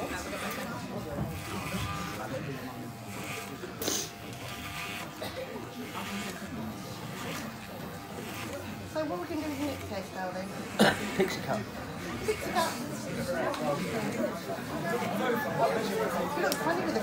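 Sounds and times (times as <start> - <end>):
crowd murmur: 0.0 - 17.0
electric hair clippers buzzing: 0.0 - 17.0.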